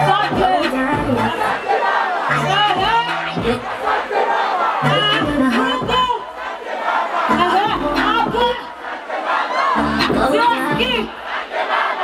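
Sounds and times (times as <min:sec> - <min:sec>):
bass beat: 0:00.0 - 0:01.6, 0:02.3 - 0:03.8, 0:04.8 - 0:06.2, 0:07.3 - 0:08.6, 0:09.8 - 0:11.1
crowd screaming and cheering: 0:00.0 - 0:12.0
loud stage music: 0:00.0 - 0:12.0.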